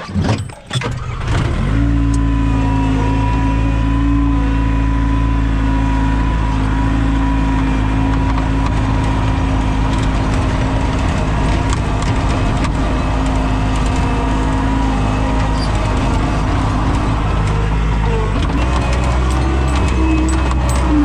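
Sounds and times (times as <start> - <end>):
diesel engine revving: 1.0 - 21.0.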